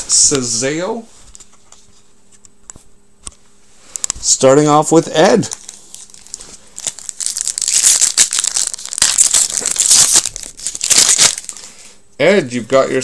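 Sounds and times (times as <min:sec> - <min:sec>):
wrapper tearing and crinkling: 0:05.3 - 0:11.7.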